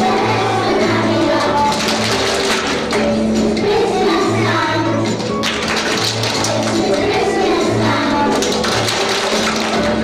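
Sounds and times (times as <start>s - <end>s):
children's choir singing: 0.0s - 5.4s, 6.1s - 10.0s.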